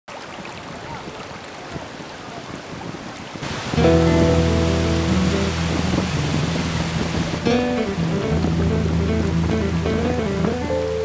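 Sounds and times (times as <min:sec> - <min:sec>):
stream rushing over stones: 0:00.1 - 0:11.0
music with sustained low notes: 0:03.8 - 0:11.0.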